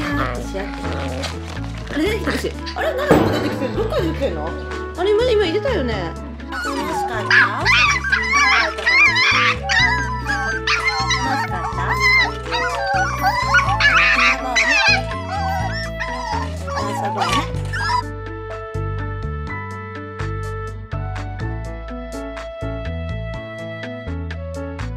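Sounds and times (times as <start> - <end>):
background music: 0.0 - 24.9
puppies whining and yipping: 6.4 - 18.2.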